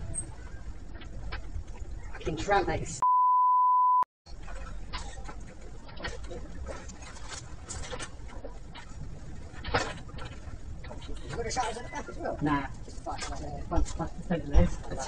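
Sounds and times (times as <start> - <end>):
censor bleep: 3.0 - 4.1.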